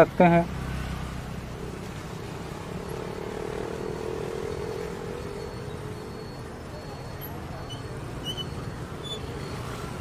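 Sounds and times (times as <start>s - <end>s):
light street traffic: 0.0s - 10.0s
tractor diesel engine: 0.0s - 10.0s.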